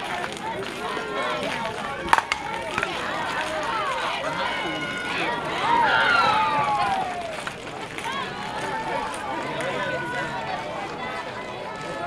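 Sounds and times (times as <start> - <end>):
players and spectators calling out: 0.0 - 12.0.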